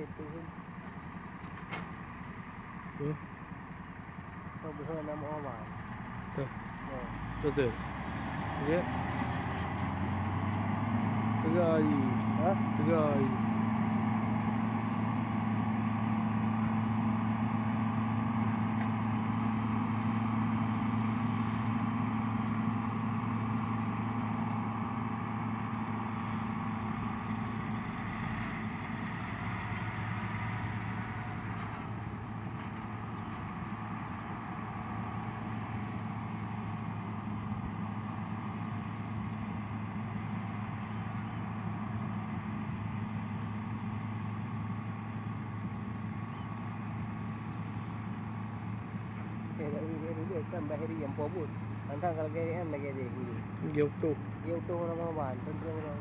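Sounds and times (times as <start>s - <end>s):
heavy diesel engines droning: 0.0s - 56.0s.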